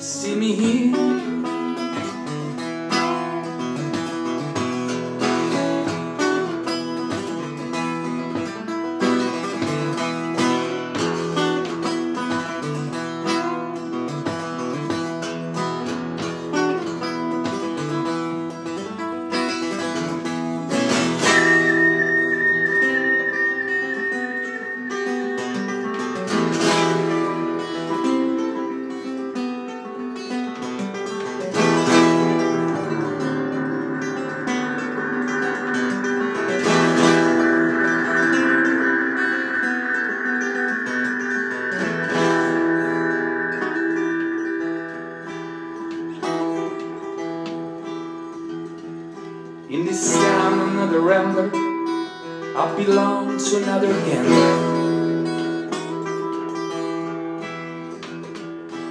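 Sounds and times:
acoustic guitar strummed and picked: 0.0 - 58.9
high held tone: 0.0 - 58.9.

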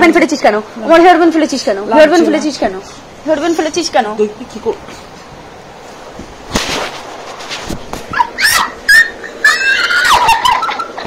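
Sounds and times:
short shrill yelps: 8.1 - 11.0
person squealing: 8.2 - 10.9.

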